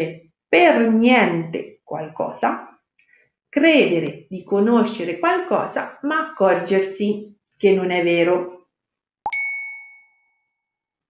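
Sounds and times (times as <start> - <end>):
ding with clear ringing tone: 9.3 - 10.7.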